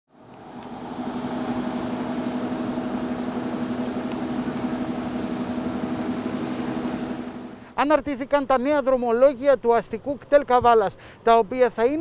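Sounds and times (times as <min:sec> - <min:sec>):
bus diesel engine idling: 0:00.2 - 0:07.8.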